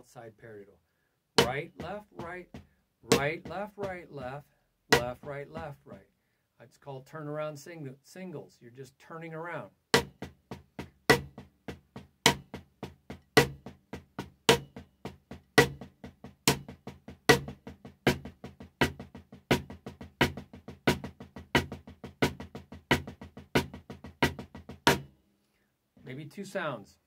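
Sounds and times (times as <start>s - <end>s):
drumsticks playing on a drum: 1.4s - 6.1s, 10.0s - 25.2s.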